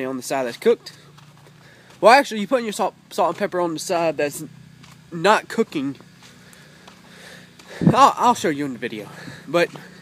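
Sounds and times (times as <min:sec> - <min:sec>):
man talking: 0:00.0 - 0:01.1, 0:02.0 - 0:04.5, 0:05.1 - 0:06.0, 0:07.7 - 0:10.0
low background noise: 0:00.0 - 0:10.0.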